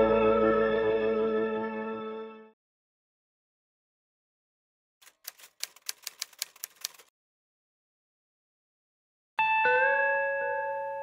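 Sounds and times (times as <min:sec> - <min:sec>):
typewriter keys clacking: 0:05.0 - 0:07.1.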